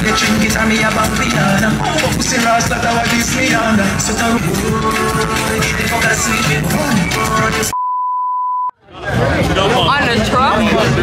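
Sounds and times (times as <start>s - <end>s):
music: 0.0s - 7.7s
steady test tone beep: 7.7s - 8.8s
people talking: 8.9s - 11.0s.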